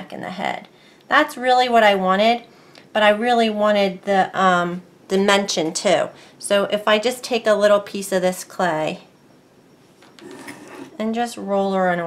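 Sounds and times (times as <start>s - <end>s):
tile scraping on cutting mat: 10.1s - 11.0s.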